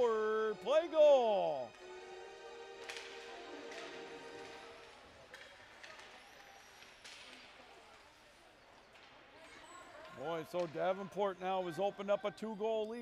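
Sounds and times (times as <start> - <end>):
faint ice rink sounds: 0.0 - 13.0.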